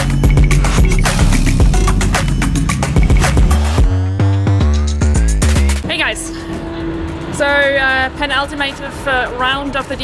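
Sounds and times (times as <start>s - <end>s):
woman speaking: 5.9s - 6.5s, 7.4s - 10.0s
car engine passing: 5.9s - 9.6s.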